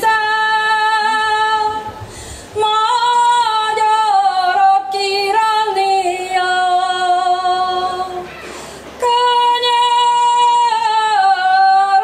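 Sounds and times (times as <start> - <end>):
woman singing unaccompanied: 0.0 - 2.0, 2.6 - 8.3, 9.0 - 12.0.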